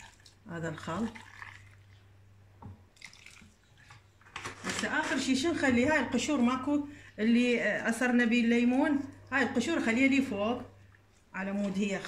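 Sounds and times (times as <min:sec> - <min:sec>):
liquid trickling into jar: 0:00.0 - 0:02.1, 0:02.9 - 0:04.1.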